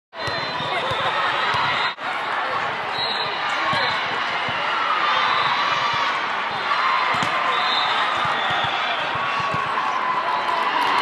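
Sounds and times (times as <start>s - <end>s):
many voices talking: 0.2s - 11.0s
volleyballs thudding: 7.1s - 7.5s, 8.1s - 9.8s.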